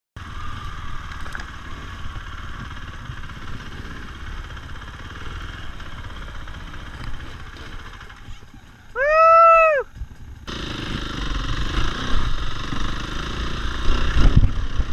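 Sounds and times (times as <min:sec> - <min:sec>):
dirt bike engine running: 0:00.2 - 0:14.9.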